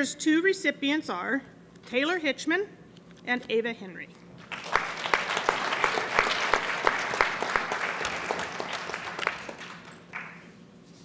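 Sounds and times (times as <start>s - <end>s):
audience applauding: 4.4s - 10.5s.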